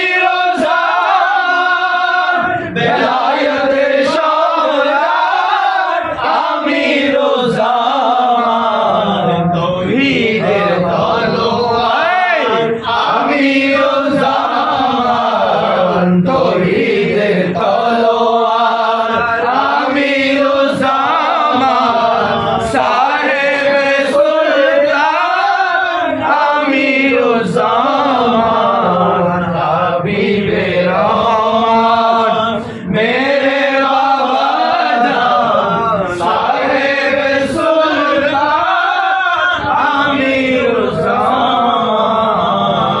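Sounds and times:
men chanting a hymn: 0:00.0 - 0:43.0.

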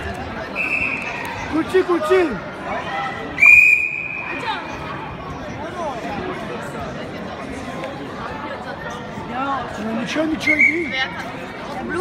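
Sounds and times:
voices echoing in hall: 0:00.0 - 0:12.0
referee whistle: 0:00.6 - 0:01.2, 0:03.4 - 0:04.4.

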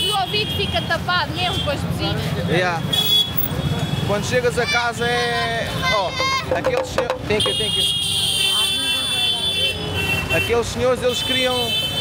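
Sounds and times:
street crowd voices: 0:00.0 - 0:12.0
vehicle horn blast: 0:07.3 - 0:10.5.

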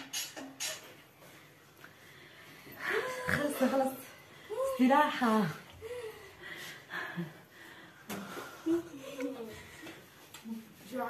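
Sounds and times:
girls talking quietly: 0:08.1 - 0:11.0.

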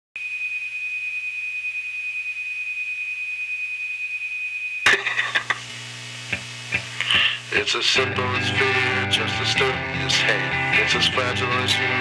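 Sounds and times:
low hum: 0:04.9 - 0:09.0
electric guitars and drums: 0:04.9 - 0:12.0.

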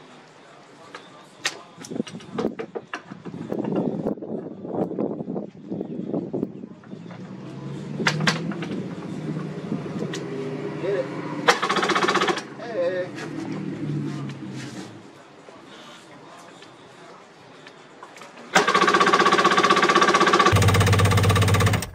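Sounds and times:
two-stroke engine cranking: 0:11.4 - 0:12.6, 0:18.5 - 0:21.9
fast rapid-fire rattle: 0:11.5 - 0:12.5, 0:18.6 - 0:21.9.

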